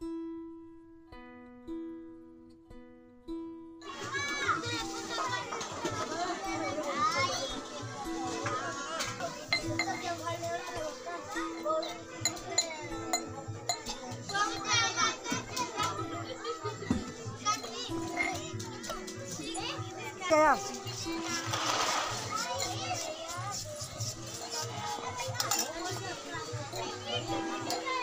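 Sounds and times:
background music: 0:00.0 - 0:28.0
children chattering and calling: 0:03.8 - 0:28.0
metal tumblers clinking: 0:09.1 - 0:16.0, 0:17.1 - 0:28.0.

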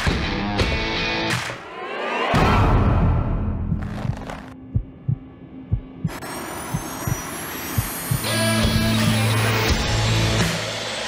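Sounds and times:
trailer music: 0:02.3 - 0:11.0
low heartbeat-like thuds: 0:03.6 - 0:07.2
high rising whine: 0:04.6 - 0:11.0.

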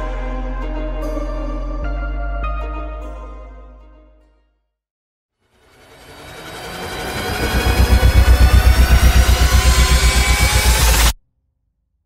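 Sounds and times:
cinematic riser: 0:05.4 - 0:11.2
low pulsing throb: 0:05.8 - 0:11.2.

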